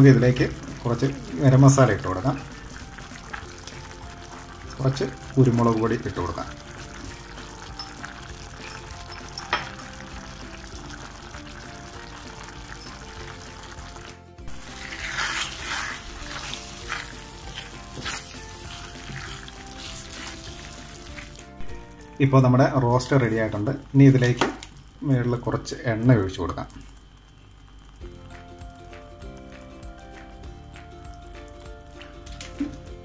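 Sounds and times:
meat sizzling in a pan: 0.0 - 33.0
soft background music: 0.0 - 33.0
spoon stirring and scraping pan: 6.5 - 21.8.

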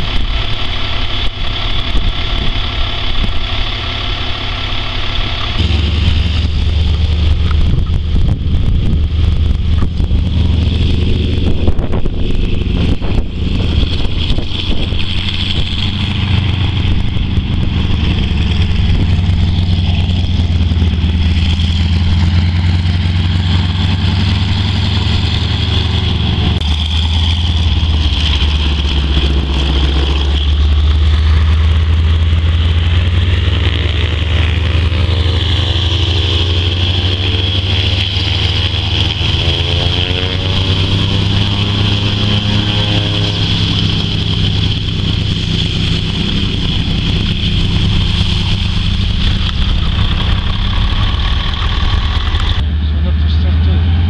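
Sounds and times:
diesel truck engine idling: 0.0 - 54.0
radial aircraft engine running: 0.0 - 54.0.

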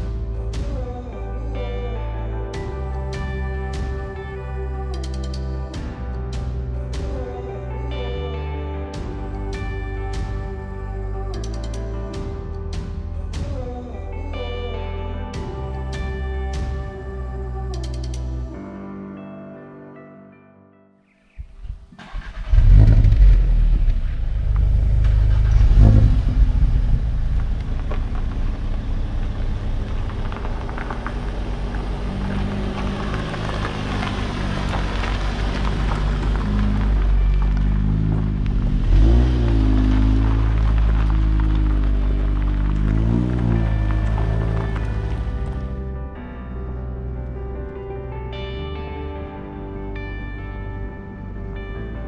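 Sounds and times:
car engines running: 22.1 - 46.2
tyres crunching on gravel: 23.4 - 45.9.

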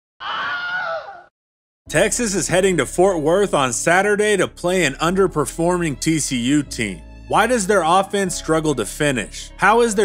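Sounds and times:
short scream-like cry: 0.2 - 1.3.

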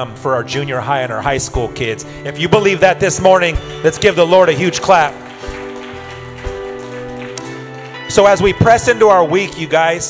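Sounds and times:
soft worship band music: 0.0 - 10.0.

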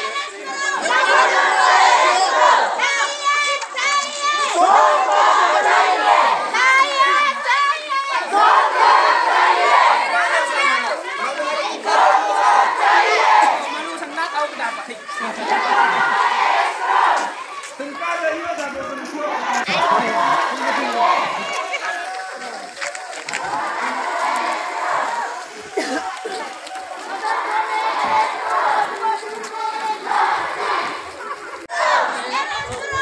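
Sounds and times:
crowd shouting slogans: 0.0 - 33.0.

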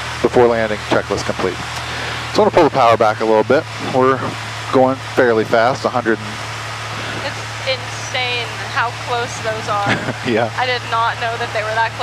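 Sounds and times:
airplane engine droning: 0.0 - 12.0
person speaking: 0.7 - 6.4, 7.0 - 12.0.

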